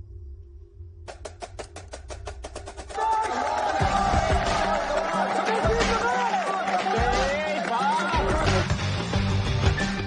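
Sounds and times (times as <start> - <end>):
rapid drum hits: 1.1 - 5.0.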